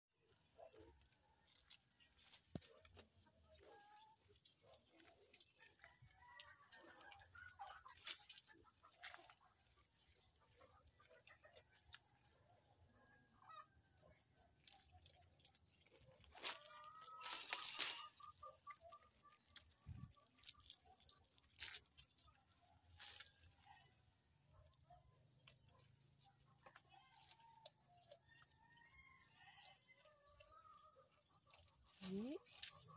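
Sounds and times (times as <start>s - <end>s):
chickens clucking: 0.5s - 32.9s.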